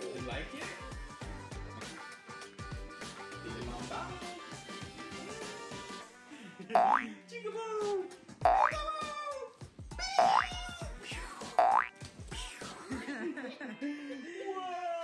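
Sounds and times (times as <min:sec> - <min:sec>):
upbeat background music: 0:00.0 - 0:15.0
cartoon boing sound effects: 0:06.8 - 0:07.1, 0:08.5 - 0:08.8, 0:10.2 - 0:10.5, 0:11.6 - 0:11.9.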